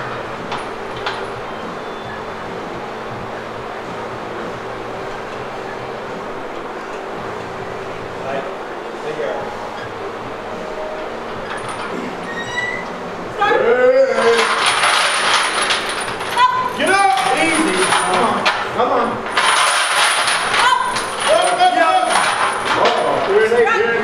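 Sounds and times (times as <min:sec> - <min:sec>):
chains clinking and rattling: 0:11.4 - 0:12.8, 0:14.1 - 0:23.5
people shouting encouragement: 0:16.3 - 0:17.8, 0:20.5 - 0:22.1.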